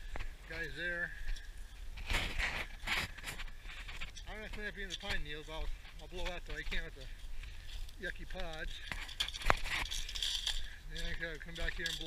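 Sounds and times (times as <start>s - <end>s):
footsteps crunching on pine needles: 0.0s - 12.0s.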